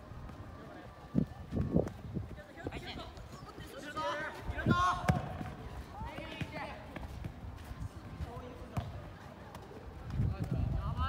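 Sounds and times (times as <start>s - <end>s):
soccer ball kicked: 1.5s - 3.4s, 4.6s - 7.4s, 8.0s - 11.0s.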